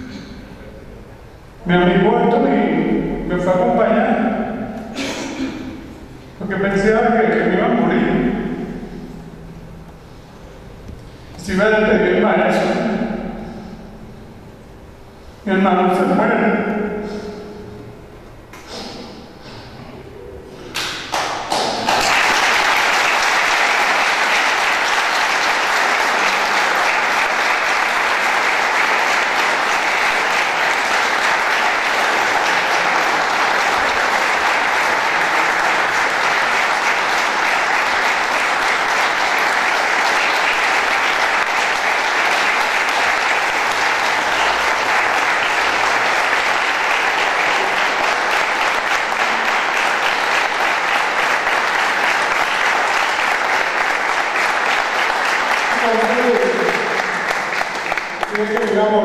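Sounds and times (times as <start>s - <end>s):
large audience applauding: 20.7s - 59.0s.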